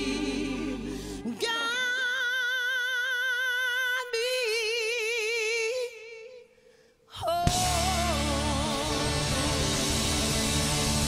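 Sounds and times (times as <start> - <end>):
woman singing with vibrato: 0.0 - 6.5, 7.1 - 9.4.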